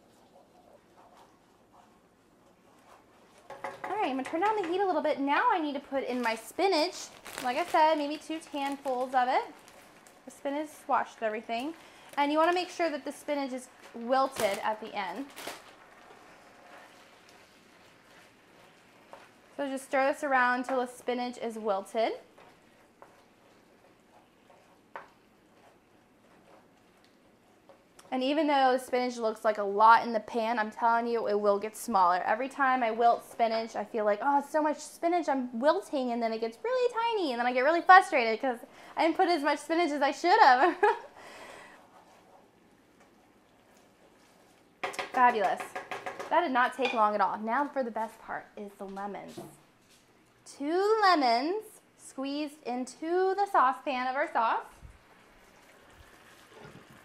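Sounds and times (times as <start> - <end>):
sauce stirred in frying pan: 0.0 - 31.0, 37.1 - 48.2, 53.5 - 57.0
woman speaking: 3.9 - 9.6, 10.3 - 15.3, 19.6 - 22.3, 28.1 - 41.0, 45.2 - 45.7, 46.3 - 49.6, 50.5 - 54.8.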